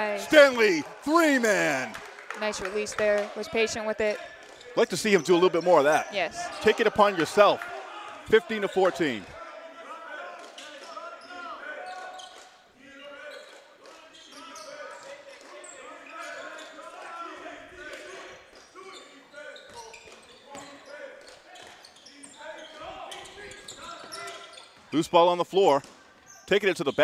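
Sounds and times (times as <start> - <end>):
players calling out: 0.0 - 2.1, 4.8 - 9.3.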